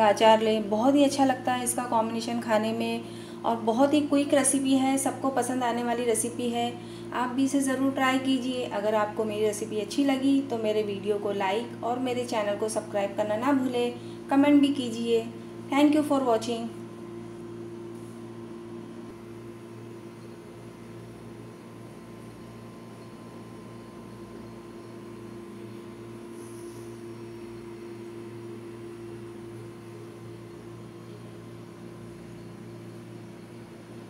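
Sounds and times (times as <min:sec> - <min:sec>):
low mechanical hum: 0:00.0 - 0:34.0.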